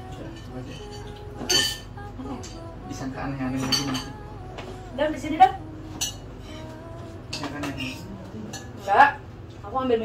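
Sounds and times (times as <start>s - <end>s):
spoons clinking against bowls: 0.0s - 2.6s, 3.5s - 4.2s, 7.3s - 9.1s.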